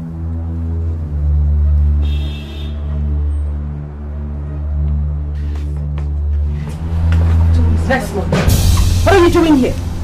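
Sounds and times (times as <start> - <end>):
woman speaking: 7.5 - 8.4, 9.0 - 9.8.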